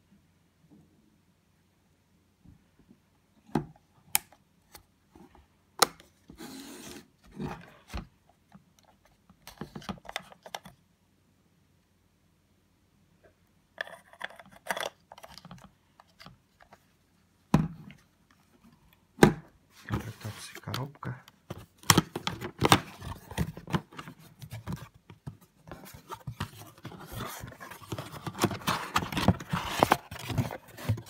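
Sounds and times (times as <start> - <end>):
rustling cardboard and plastic wrap: 25.7 - 31.0.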